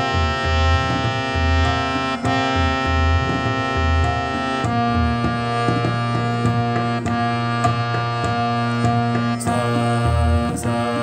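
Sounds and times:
keyboard sustained notes: 0.0s - 11.0s
low tabla strokes: 0.0s - 11.0s
steady drone: 0.0s - 11.0s.

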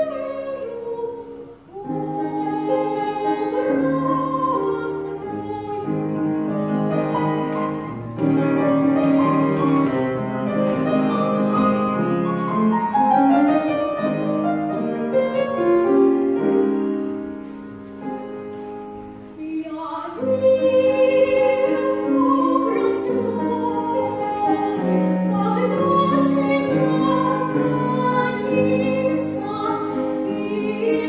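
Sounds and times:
girl singing classically: 0.0s - 7.6s, 19.3s - 31.0s
grand piano accompaniment: 0.0s - 31.0s.

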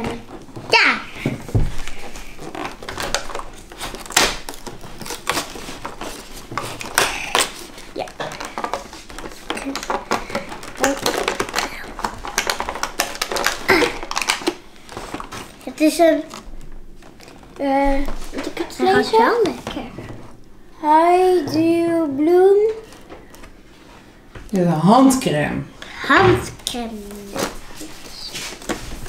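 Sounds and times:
cardboard tearing: 1.5s - 19.0s, 26.7s - 29.0s.

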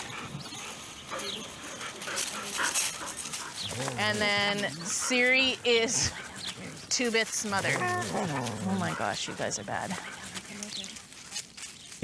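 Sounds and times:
dogs making soft vocal sounds: 0.0s - 11.3s
rustles and scuffs: 0.1s - 12.0s.

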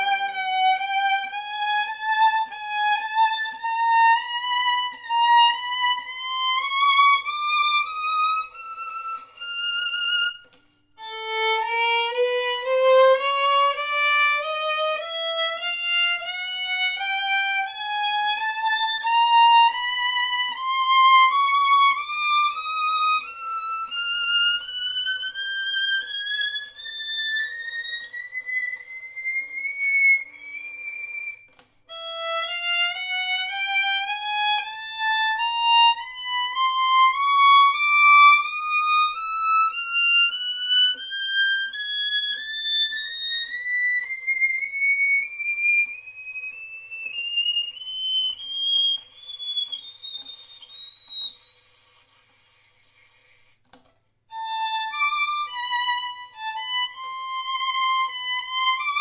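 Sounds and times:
bowed violin rising pitch: 0.0s - 59.0s.

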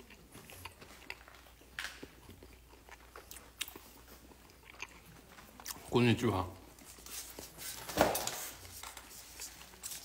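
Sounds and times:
person chewing crunchy food: 0.0s - 6.0s.

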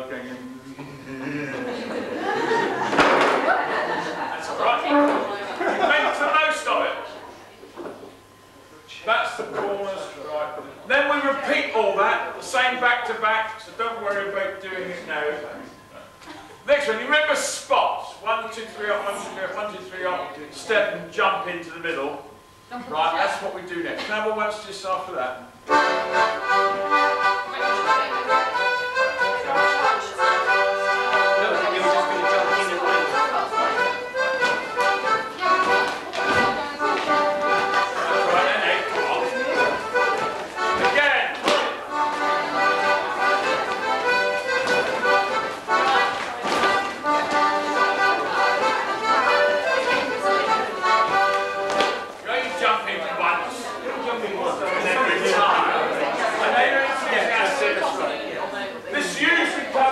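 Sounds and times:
accordion dance tune: 3.0s - 6.5s, 25.6s - 52.2s.

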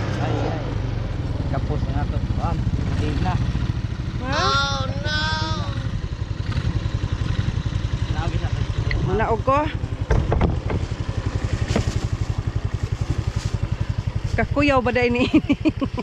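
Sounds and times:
atv engine running: 0.0s - 16.0s.

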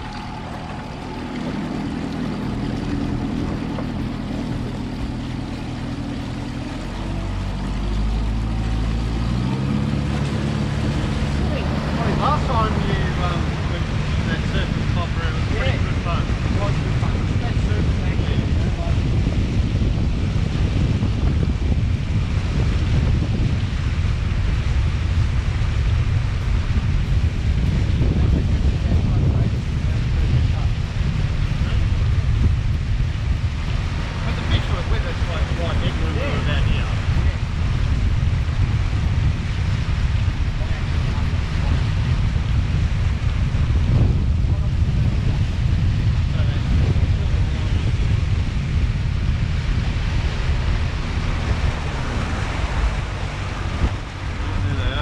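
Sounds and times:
outboard motor running: 0.0s - 55.0s
rush of boat wake: 0.0s - 55.0s
wind buffeting microphone: 0.0s - 55.0s.

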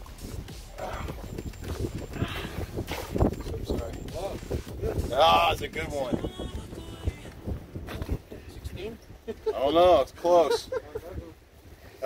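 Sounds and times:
brief swish: 2.8s - 3.3s.

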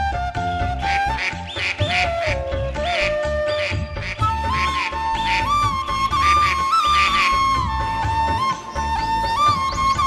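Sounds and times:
background music with gliding melody: 0.0s - 10.0s.

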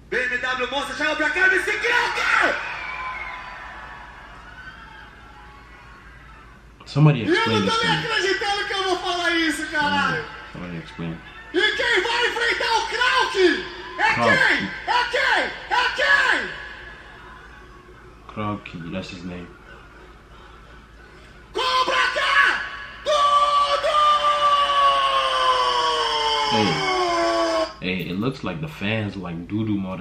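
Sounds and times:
low background noise: 0.0s - 30.0s
man shouting into a microphone: 0.1s - 2.6s, 7.2s - 10.8s, 11.4s - 16.8s, 21.5s - 27.8s
crowd cheering and whooping: 1.9s - 6.6s, 23.0s - 27.7s.

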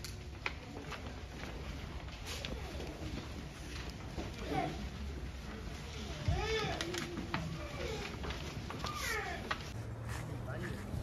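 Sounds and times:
child whining cries: 6.2s - 9.6s.

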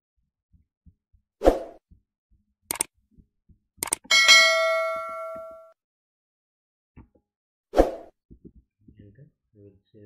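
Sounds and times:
mouse click: 3.8s - 4.1s
bell notification ding: 4.1s - 5.7s.

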